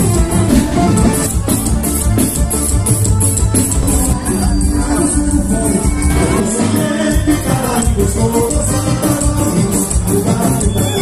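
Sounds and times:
accordion: 0.0 - 11.0
bass: 0.0 - 11.0
drum kit: 0.0 - 11.0.

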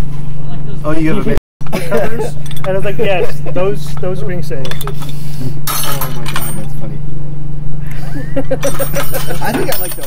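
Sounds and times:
steady low hum: 0.0 - 10.0
metal tools clinking: 2.3 - 2.8, 4.6 - 6.8, 8.6 - 10.0.

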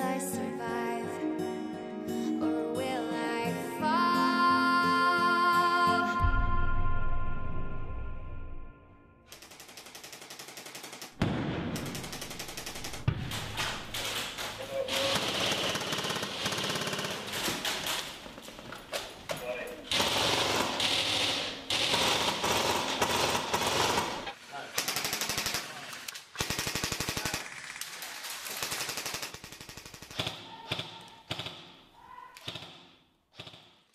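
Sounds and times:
airsoft guns firing full-auto: 9.3 - 17.7, 19.9 - 31.6.

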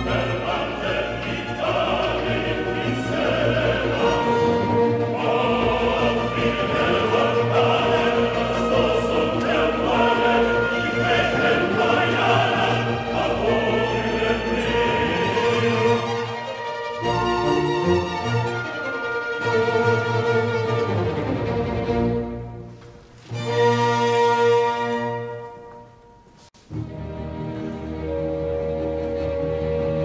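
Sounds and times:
opera chorus singing: 0.0 - 22.0
classical orchestra: 0.0 - 30.0.

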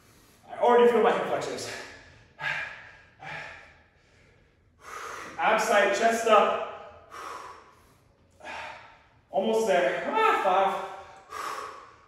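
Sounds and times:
man breathing hard: 0.0 - 0.5, 1.6 - 5.5, 6.6 - 9.3, 10.8 - 12.0.

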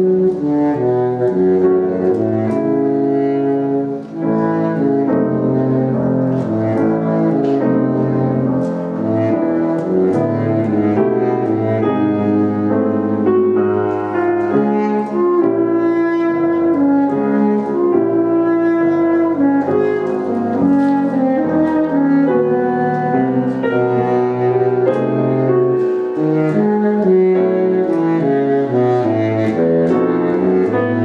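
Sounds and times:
baritone saxophone melody: 0.0 - 31.0
grand piano: 0.0 - 31.0.

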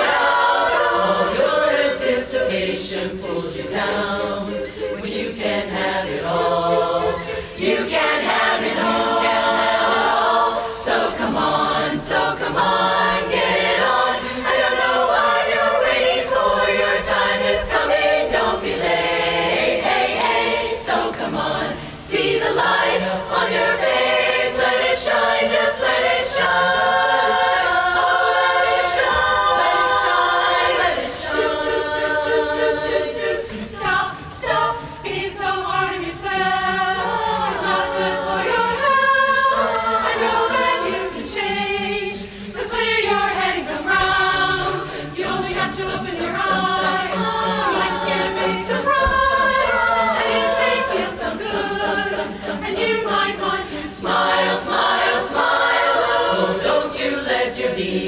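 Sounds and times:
women's chorus singing a cappella: 0.0 - 58.0.

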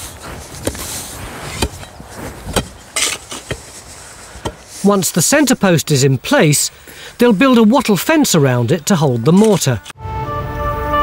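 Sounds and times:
axe chopping wood: 0.6 - 0.9, 1.5 - 3.8, 4.4 - 4.7.

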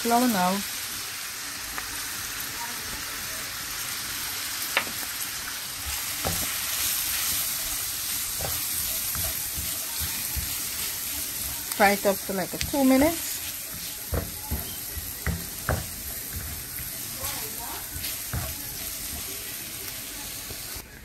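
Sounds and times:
vegetables sizzling in oil: 0.0 - 20.8
spoon scraping and knocking pan: 5.9 - 19.5.

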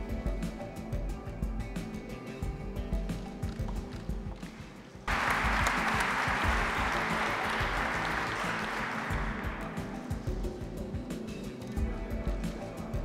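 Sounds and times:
background music: 0.0 - 13.0
audience applause: 4.6 - 10.2.

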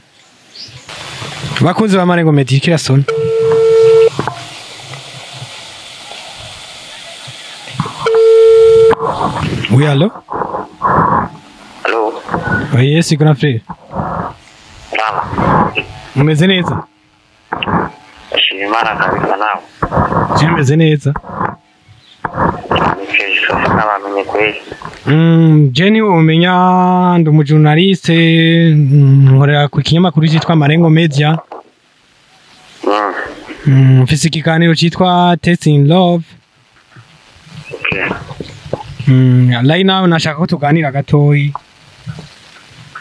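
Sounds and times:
person talking on a phone call: 1.5 - 4.3, 7.7 - 16.9, 17.5 - 21.5, 22.3 - 31.6, 32.8 - 36.4, 37.7 - 38.4
phone ringback tone: 3.1 - 4.2, 8.0 - 9.1
short high beep: 3.1 - 4.2, 8.0 - 9.1.

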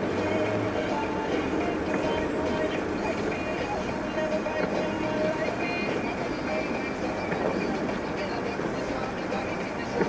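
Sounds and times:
car cabin noise: 0.0 - 10.0.

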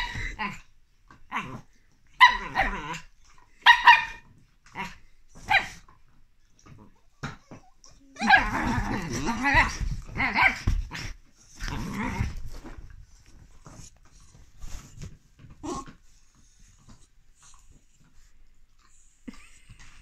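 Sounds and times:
dog growling: 1.3 - 1.8, 2.4 - 3.1, 6.7 - 12.8, 15.6 - 16.0
soft rustles: 7.5 - 20.0.

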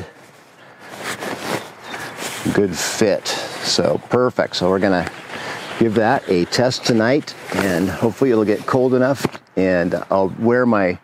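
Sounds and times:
nylon quilt rustling: 0.0 - 10.2.

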